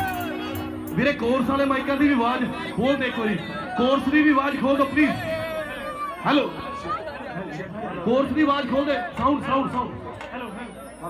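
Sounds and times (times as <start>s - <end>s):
man calling into a microphone: 0.0s - 6.6s
crowd chatter: 0.0s - 11.0s.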